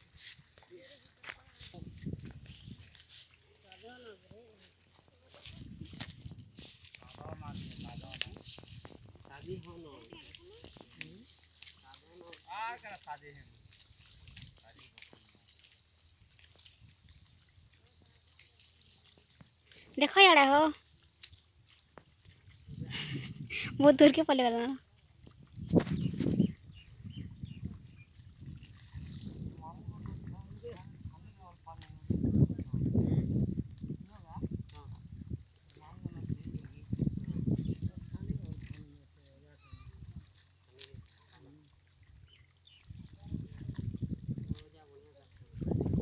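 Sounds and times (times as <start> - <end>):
wind rumble on microphone: 1.4 - 3.0, 5.4 - 10.9, 22.3 - 24.0, 25.2 - 39.0, 39.6 - 40.3, 42.2 - 46.0.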